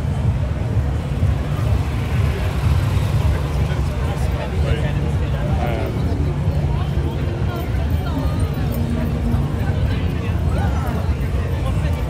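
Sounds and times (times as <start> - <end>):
babble of many voices: 0.0 - 12.0
low street rumble: 0.0 - 12.0.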